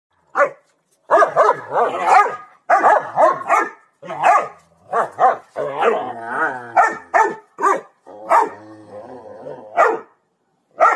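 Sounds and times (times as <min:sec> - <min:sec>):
dogs barking: 0:00.3 - 0:06.0, 0:06.7 - 0:08.6, 0:09.8 - 0:10.1.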